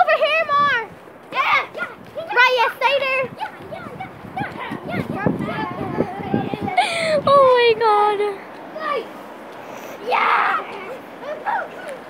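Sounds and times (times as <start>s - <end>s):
children shouting and squealing: 0.0s - 12.0s.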